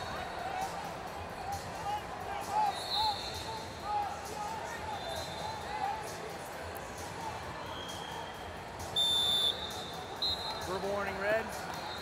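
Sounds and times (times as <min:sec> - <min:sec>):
referee's whistle blast: 0:09.0 - 0:10.7.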